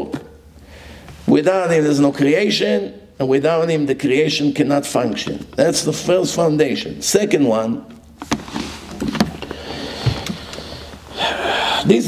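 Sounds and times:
rustling near a microphone: 8.2s - 11.1s.

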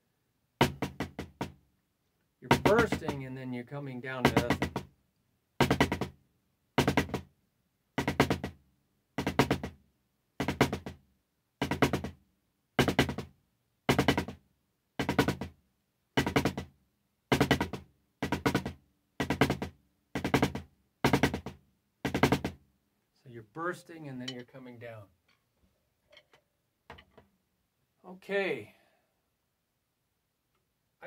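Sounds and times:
drumsticks playing drum rolls: 2.5s - 3.4s, 4.1s - 4.8s, 23.5s - 25.1s.

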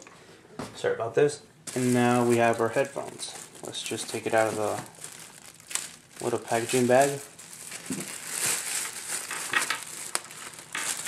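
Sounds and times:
plastic bag crinkling: 1.7s - 11.0s.

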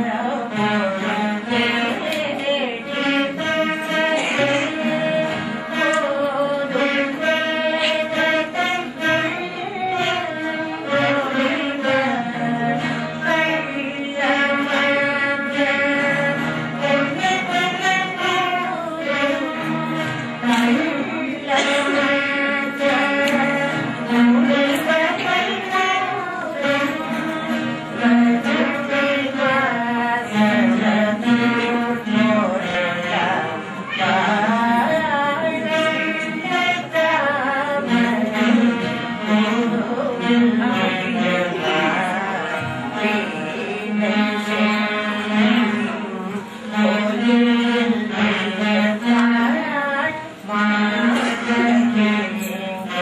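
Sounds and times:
veena ensemble music: 0.0s - 53.0s
voices singing melody: 0.0s - 53.0s.

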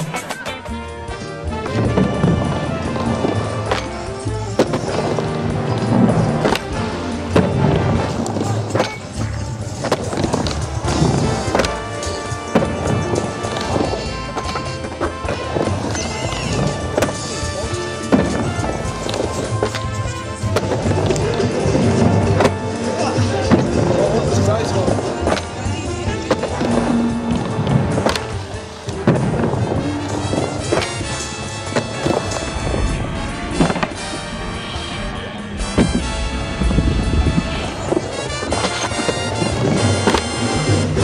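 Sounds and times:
music: 0.0s - 41.0s
skateboard rolling on ramp: 0.0s - 41.0s.

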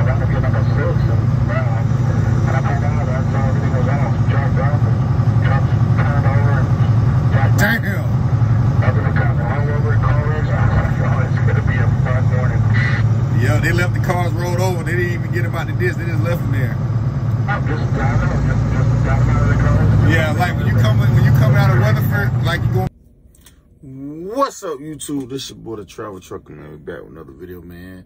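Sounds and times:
person talking indistinctly: 0.0s - 16.8s
truck engine and road noise: 0.0s - 27.5s.

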